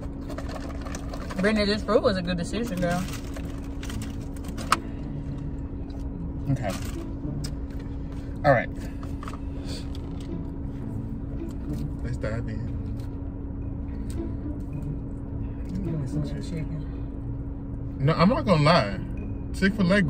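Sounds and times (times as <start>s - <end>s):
car interior hum: 0.0s - 20.0s.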